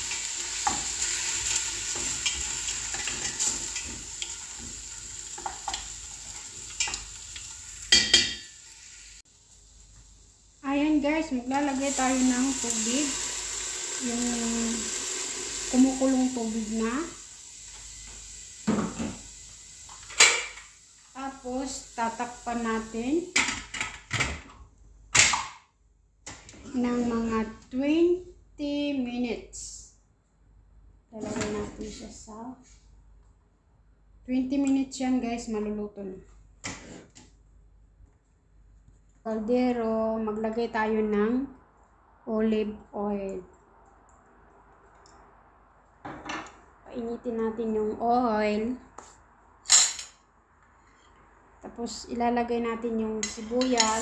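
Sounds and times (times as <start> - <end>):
kitchenware clanking: 7.8 - 8.6, 49.7 - 50.2, 53.2 - 54.0
water trickling into pot: 11.8 - 17.8.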